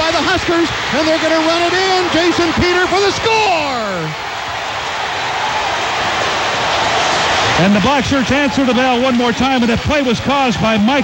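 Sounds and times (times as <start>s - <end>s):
announcer shouting: 0.0s - 4.2s, 7.6s - 11.0s
stadium crowd cheering: 0.0s - 11.0s.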